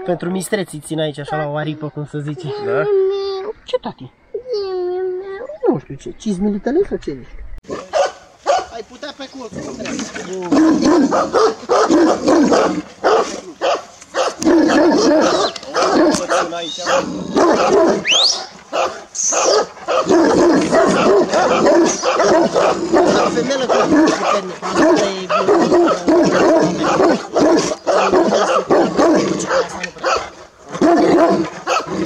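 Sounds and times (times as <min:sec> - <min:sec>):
dogs barking: 0:07.7 - 0:08.8, 0:09.6 - 0:32.0.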